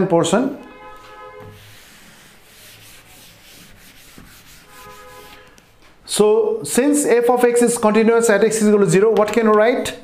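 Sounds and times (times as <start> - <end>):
duster rubbing on blackboard: 1.0 - 5.9.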